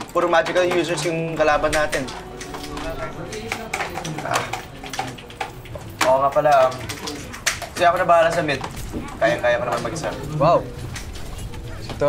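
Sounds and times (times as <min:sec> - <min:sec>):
keyboards and mice clicking: 0:00.0 - 0:12.0
faint voices: 0:00.9 - 0:12.0.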